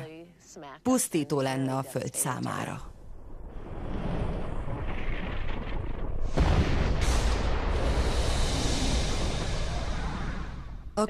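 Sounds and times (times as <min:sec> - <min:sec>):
deep noisy roar: 0:03.4 - 0:11.0.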